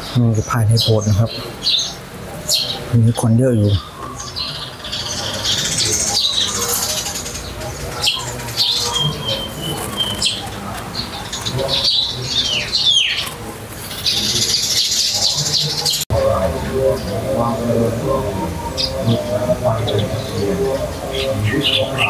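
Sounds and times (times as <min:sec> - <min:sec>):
birds chirping and calling: 0:00.0 - 0:22.0.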